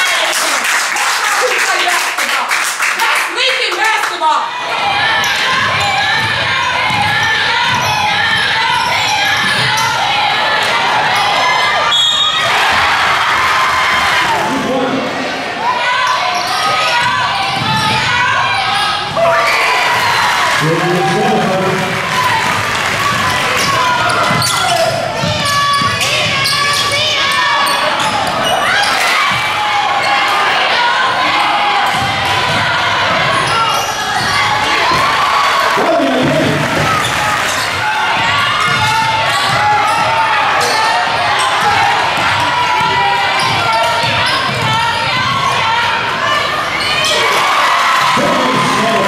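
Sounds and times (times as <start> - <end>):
people calling out in echoing gym: 0.0 - 49.0
basketball bouncing on wooden floor: 38.2 - 40.2.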